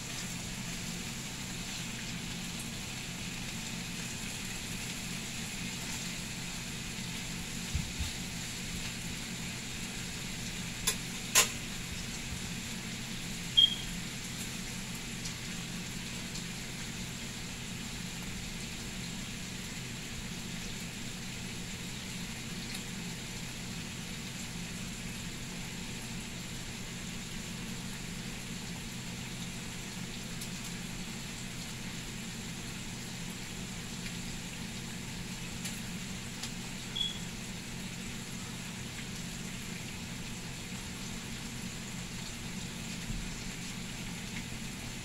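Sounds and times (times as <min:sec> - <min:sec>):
bacon sizzling in a skillet: 0:00.0 - 0:45.0.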